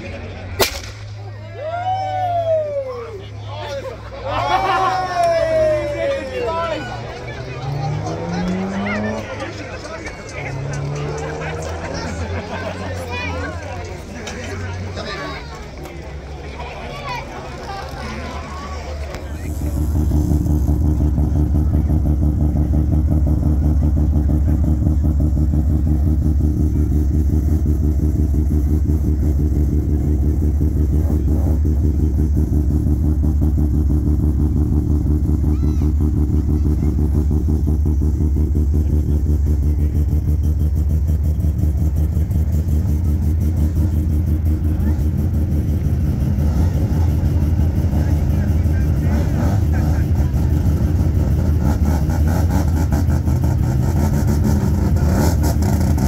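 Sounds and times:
rotary engine idling: 6.0s - 56.0s.

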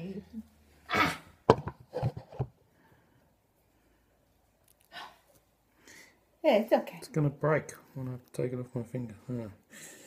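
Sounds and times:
knocks on wooden tabletop: 1.5s - 2.5s.

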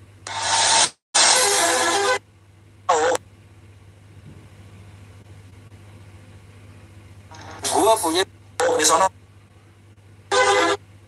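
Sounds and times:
steady low hum: 0.0s - 0.4s, 1.4s - 11.0s.

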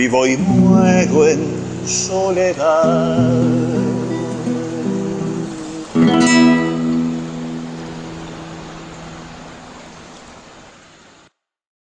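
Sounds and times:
acoustic guitar chord ringing: 0.0s - 9.5s
waterfall rushing: 0.0s - 11.3s.

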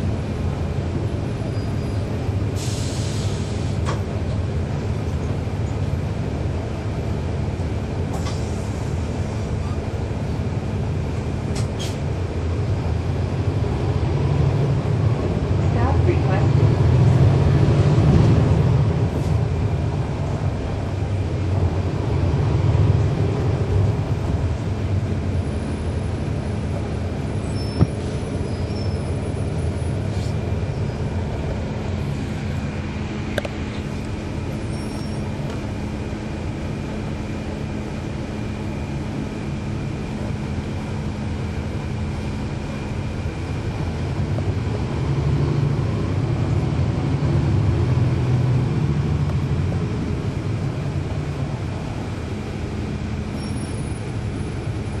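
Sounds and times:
bus diesel engine running: 0.0s - 55.0s.

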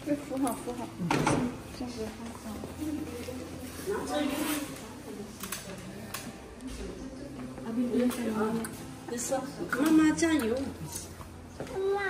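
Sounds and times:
small child talking: 11.7s - 12.0s.

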